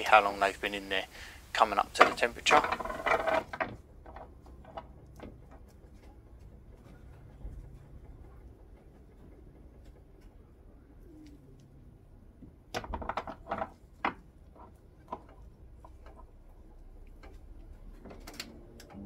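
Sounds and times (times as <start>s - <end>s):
low quiet hum: 0.0s - 19.0s
bird cooing faintly: 10.6s - 11.8s.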